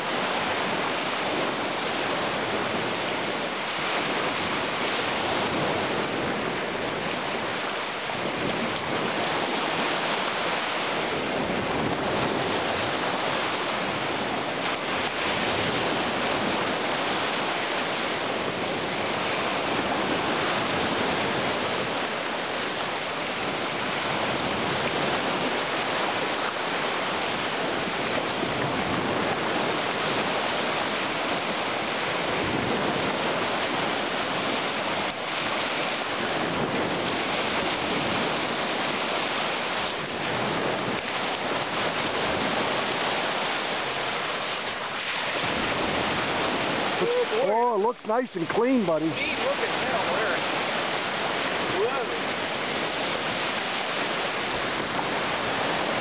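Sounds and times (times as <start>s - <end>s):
lake surf washing onto shore: 0.0s - 56.0s.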